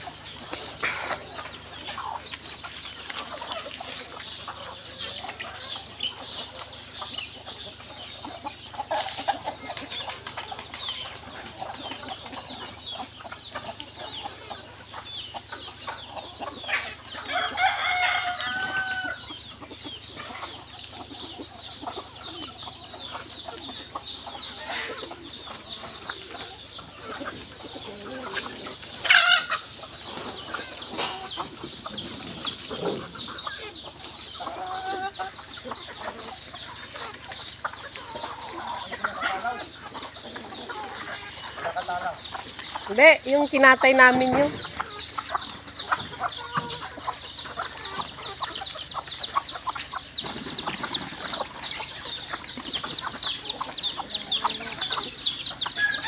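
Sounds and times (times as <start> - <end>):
chickens clucking: 0.0 - 56.0
rooster crowing: 17.3 - 19.2.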